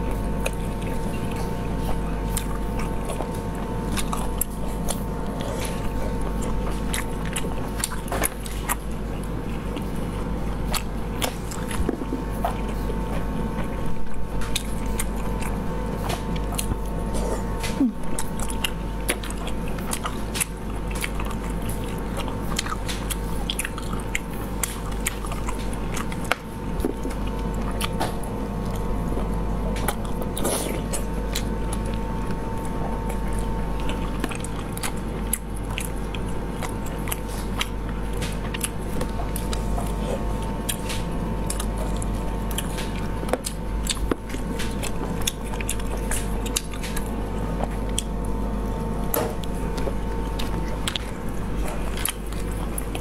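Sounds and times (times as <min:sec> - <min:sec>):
close chewing with wet clicks: 0:00.0 - 0:53.0
steady electrical hum: 0:00.0 - 0:53.0.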